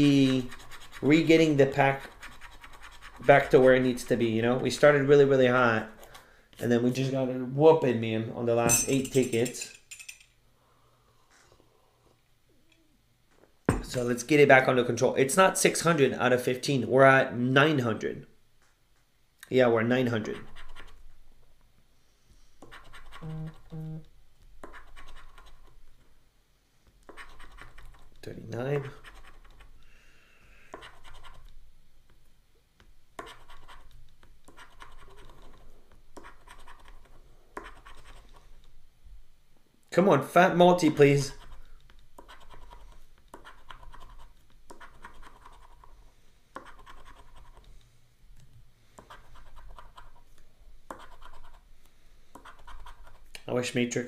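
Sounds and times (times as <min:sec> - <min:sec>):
scratching lottery ticket: 0:00.0 - 0:04.2, 0:22.6 - 0:23.8, 0:27.1 - 0:28.2, 0:28.8 - 0:29.8, 0:33.2 - 0:38.6, 0:41.2 - 0:46.0, 0:46.6 - 0:47.7.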